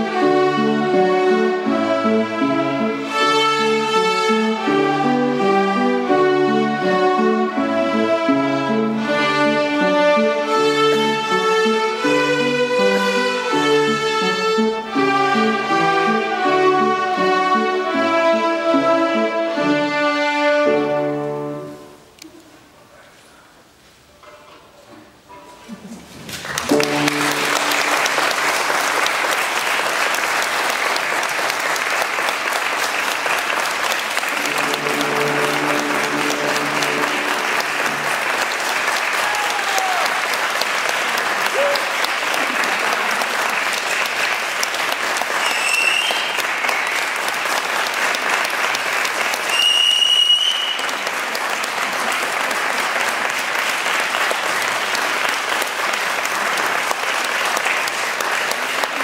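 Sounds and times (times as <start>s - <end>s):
audience applauding: 26.3s - 59.0s.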